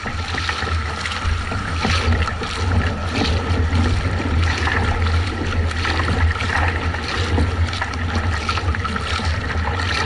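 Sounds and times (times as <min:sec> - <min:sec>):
paddle blades splashing: 0:00.0 - 0:10.0
water slapping hull: 0:00.0 - 0:10.0
wind rumbling on microphone: 0:00.0 - 0:10.0.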